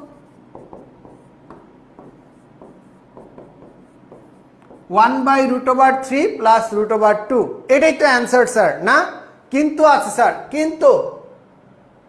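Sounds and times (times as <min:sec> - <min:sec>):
marker pen writing on whiteboard: 0:00.0 - 0:06.1.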